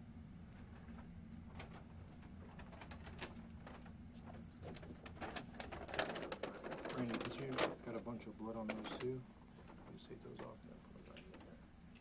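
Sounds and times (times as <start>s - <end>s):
low room hum: 0.0s - 12.0s
clothing and bags rustling: 0.5s - 11.6s.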